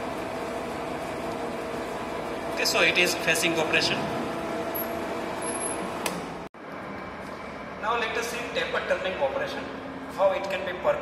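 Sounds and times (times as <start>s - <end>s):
lathe humming: 0.0s - 6.5s.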